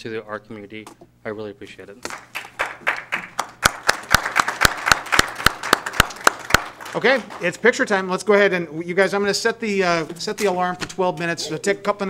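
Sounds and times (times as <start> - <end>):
close loud hand claps: 2.0 - 7.4
small group applauding: 2.0 - 7.5.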